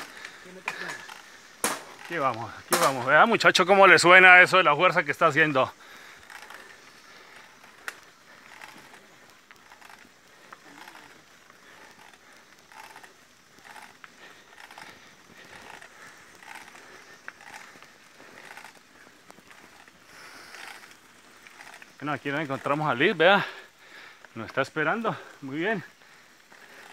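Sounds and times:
bike creaking and crunching: 0.0s - 26.9s.

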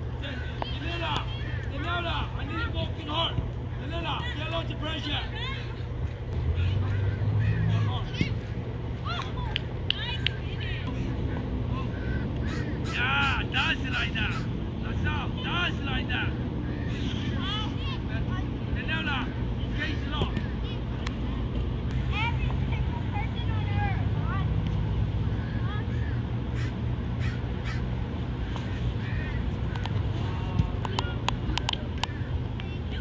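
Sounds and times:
steady low hum: 0.0s - 33.0s
distant children shouting: 6.4s - 13.6s.

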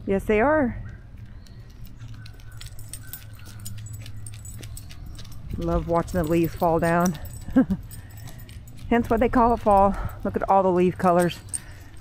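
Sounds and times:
low steady hum: 0.0s - 12.0s
small metal pieces jingling: 1.2s - 12.0s.

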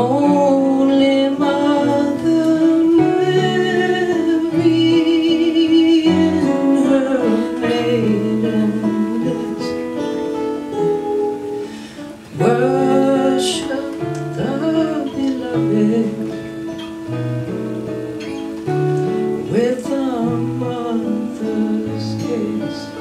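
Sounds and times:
woman singing a carol: 0.0s - 11.2s, 12.3s - 16.7s, 19.4s - 23.0s
acoustic guitars fingerpicking: 0.0s - 23.0s.

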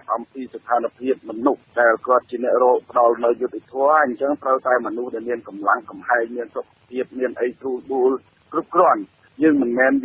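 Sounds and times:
radio news speech: 0.0s - 10.0s.

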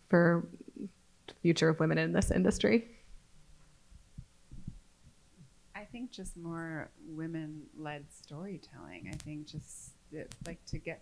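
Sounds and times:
woman speaking: 0.1s - 2.9s, 5.8s - 11.0s
microphone handling thumps: 3.6s - 5.5s.

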